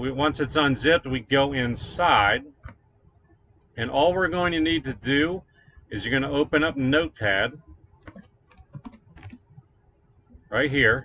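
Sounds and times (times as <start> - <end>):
computer keyboard typing: 8.0 - 9.6.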